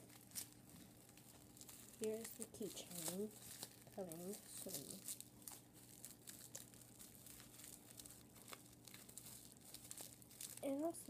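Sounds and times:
low steady hum: 0:00.0 - 0:11.0
packaging crinkling: 0:00.0 - 0:11.0.

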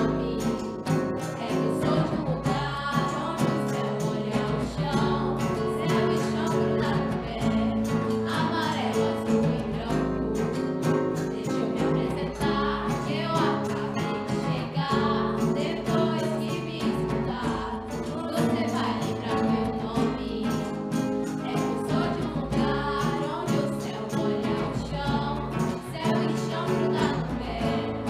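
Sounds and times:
conga drum: 0:00.0 - 0:28.0
girls singing together: 0:00.0 - 0:28.0
strummed acoustic guitar: 0:00.0 - 0:28.0
tambourine: 0:00.0 - 0:28.0.

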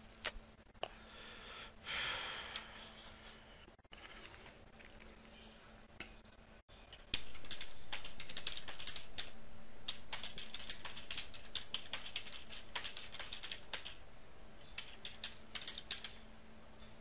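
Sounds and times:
faint steady hum: 0:00.0 - 0:17.0
typing on computer keyboard: 0:06.9 - 0:09.3, 0:09.9 - 0:14.0, 0:14.8 - 0:16.2.

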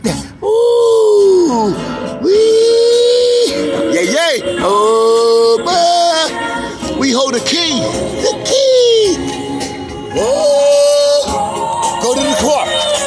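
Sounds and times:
person singing long notes: 0:00.4 - 0:07.0, 0:08.0 - 0:13.0
music: 0:01.3 - 0:13.0.

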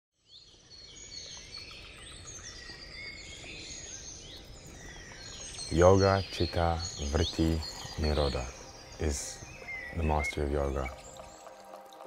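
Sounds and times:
birds singing and chirping: 0:00.2 - 0:12.0.

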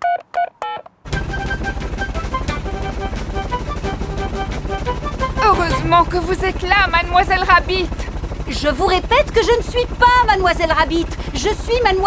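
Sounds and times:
light music: 0:01.1 - 0:08.2
cartoon helicopter rotor chop: 0:01.1 - 0:12.0.

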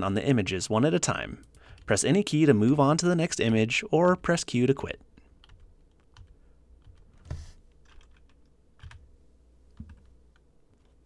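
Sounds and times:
keyboard keys clicking: 0:05.4 - 0:09.0.

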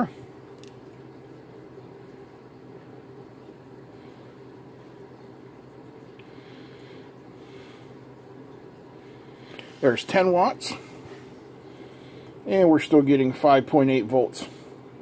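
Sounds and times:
small cooling fan humming: 0:00.0 - 0:15.0.

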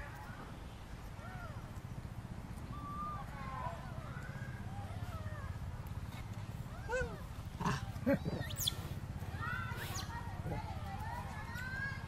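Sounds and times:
monkeys coo and squeak calls: 0:06.8 - 0:09.0, 0:09.6 - 0:10.2
monkey high squeal: 0:08.4 - 0:08.8, 0:09.8 - 0:10.1.

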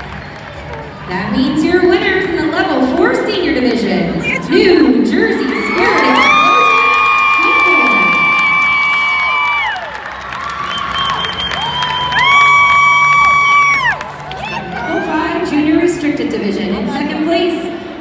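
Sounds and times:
crowd screaming and cheering: 0:05.4 - 0:15.4.

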